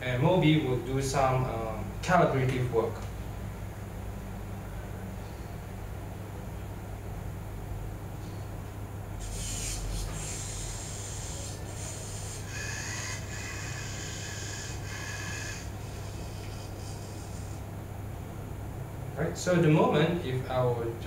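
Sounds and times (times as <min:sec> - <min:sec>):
steady low hum: 0:00.0 - 0:21.0
small electric motors whirring: 0:09.2 - 0:17.6.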